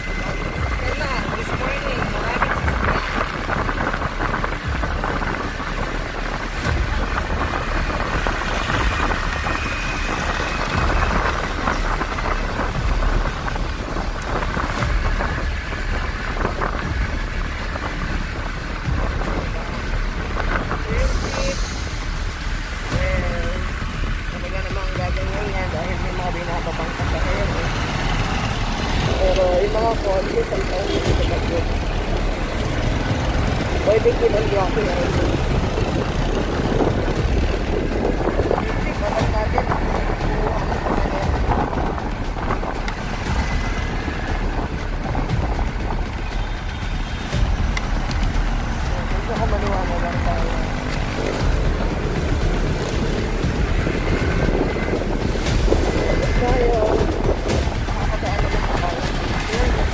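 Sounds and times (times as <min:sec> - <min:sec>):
motorcycle road noise: 0:00.0 - 0:59.9
wind buffeting microphone: 0:00.0 - 0:59.9.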